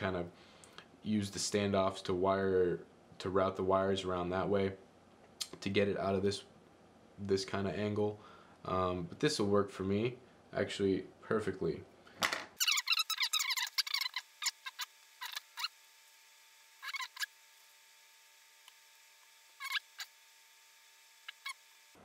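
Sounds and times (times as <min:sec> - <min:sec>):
high squeaky chirps: 0:12.6 - 0:15.8, 0:16.8 - 0:17.3, 0:19.6 - 0:20.1, 0:21.2 - 0:21.6.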